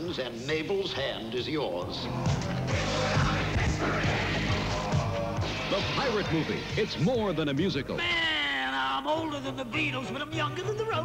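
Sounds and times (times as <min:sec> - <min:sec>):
soundtrack music: 0:02.0 - 0:08.3.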